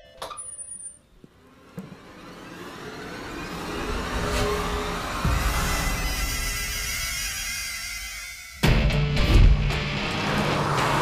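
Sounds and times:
rising rush with low rumble: 1.3 - 8.6, 9.6 - 11.0
loud film music: 1.5 - 11.0
deep boom: 4.6 - 7.4.

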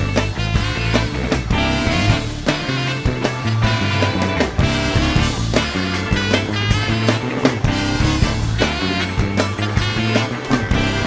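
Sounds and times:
funk band playing: 0.0 - 11.0.

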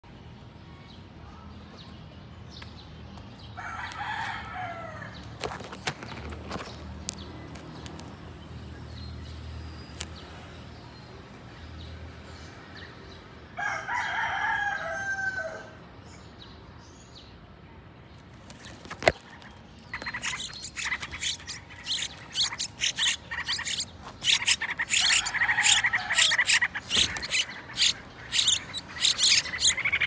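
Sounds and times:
bird's long call: 20.0 - 30.0.

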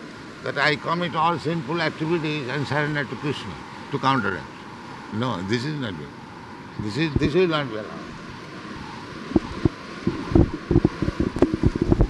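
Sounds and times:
tape hiss: 0.0 - 12.0.

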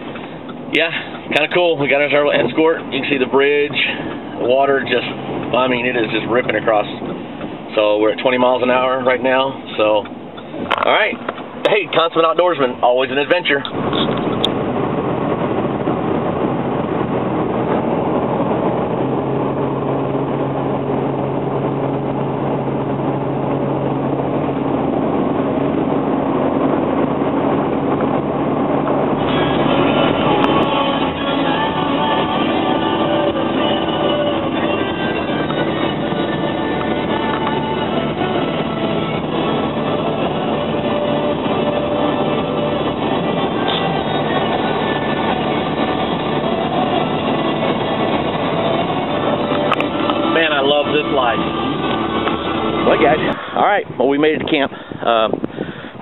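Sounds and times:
road and wind noise rushing: 0.0 - 56.0
vehicle engine and road drone: 0.0 - 56.0.

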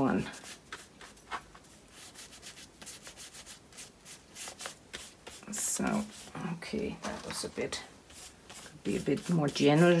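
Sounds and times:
paintbrush scratching on paper: 0.0 - 10.0.

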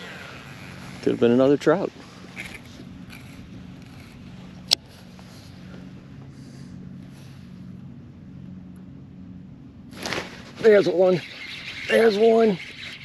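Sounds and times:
trolling motor electric hum: 0.0 - 13.0.

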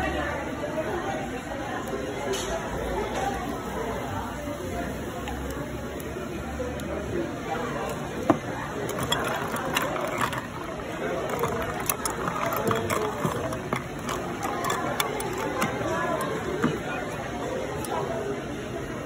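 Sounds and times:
people chattering: 0.0 - 19.0
ice cubes clinking in glass: 8.3 - 17.1.

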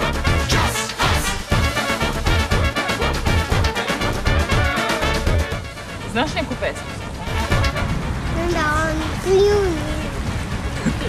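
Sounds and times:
brass band music: 0.0 - 8.5
deep drum beats: 0.0 - 11.0.

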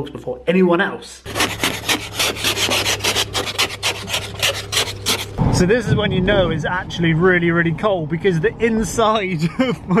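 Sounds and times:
ice scraper scraping frost off glass: 1.3 - 5.4.

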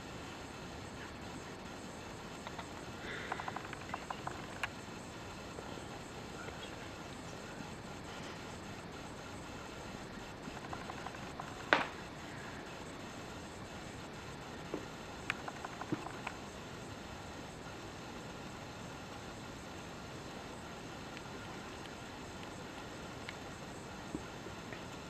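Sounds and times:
steady hiss: 0.0 - 25.0
faint clicks: 14.7 - 16.4, 21.1 - 23.4.

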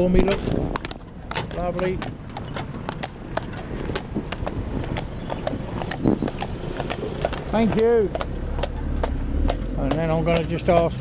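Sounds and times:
horse hooves clopping on road: 0.0 - 11.0
steady low rumble: 0.0 - 11.0.

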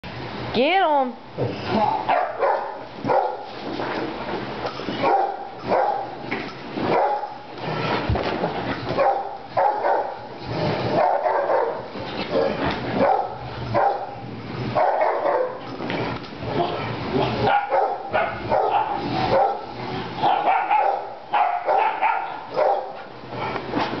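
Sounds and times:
dogs barking and vocalizing: 1.8 - 4.1, 4.7 - 24.0.

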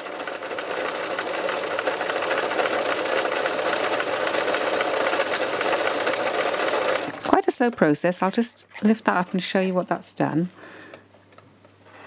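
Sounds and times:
sewing machine running: 0.0 - 9.8.

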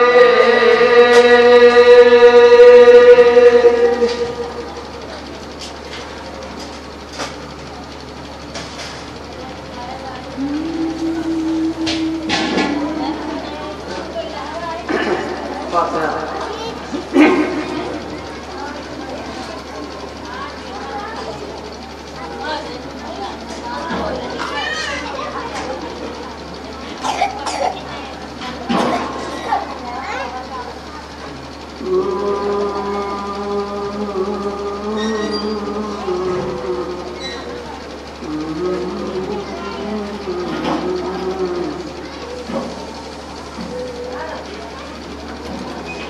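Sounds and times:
public-address system hum: 0.0 - 46.0
background voices: 9.5 - 30.0, 31.6 - 46.0.

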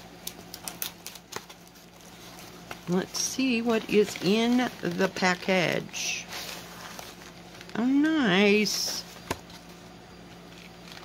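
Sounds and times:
paper and packing tape crackling: 0.0 - 11.0.

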